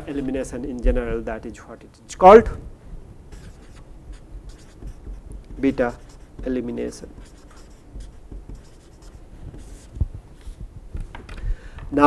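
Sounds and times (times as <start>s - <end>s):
marker pen scratching on paper: 3.1s - 11.4s.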